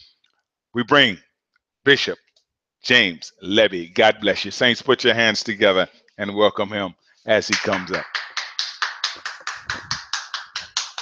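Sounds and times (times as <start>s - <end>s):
hands clapping: 7.4s - 11.0s.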